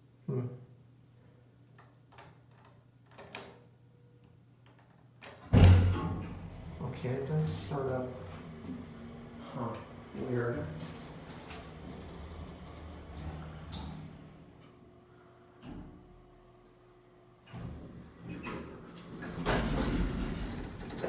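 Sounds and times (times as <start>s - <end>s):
elevator humming: 2.1s - 21.0s
elevator doors sliding open: 5.3s - 10.1s, 10.7s - 14.6s, 17.5s - 21.0s.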